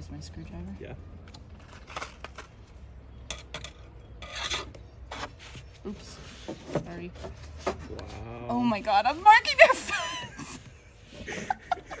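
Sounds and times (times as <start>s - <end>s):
eye hook scraping into wood: 3.4s - 5.3s.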